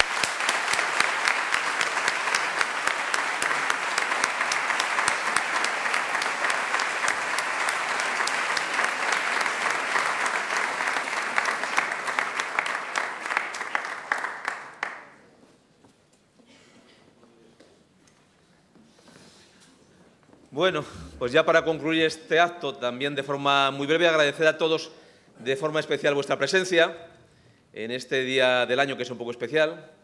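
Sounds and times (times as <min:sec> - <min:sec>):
audience applauding: 0:00.0 - 0:15.2.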